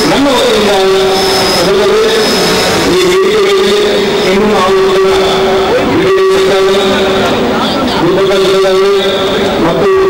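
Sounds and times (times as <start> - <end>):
man singing through loudspeakers: 0.0 - 10.0.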